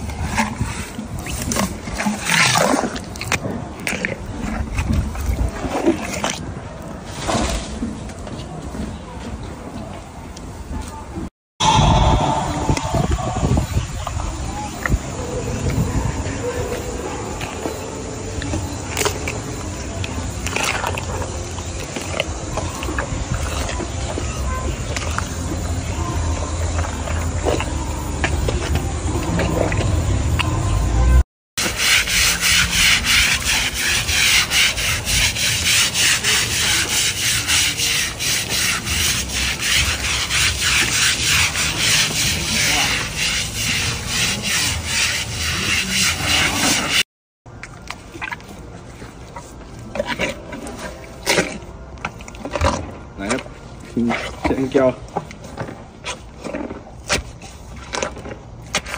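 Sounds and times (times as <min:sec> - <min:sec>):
elephant chewing: 0:00.0 - 0:07.0, 0:16.7 - 0:31.0, 0:47.5 - 0:58.9
low rumble: 0:11.6 - 0:16.2
hose water spraying: 0:31.6 - 0:47.0
scrubbing strokes: 0:31.6 - 0:47.0.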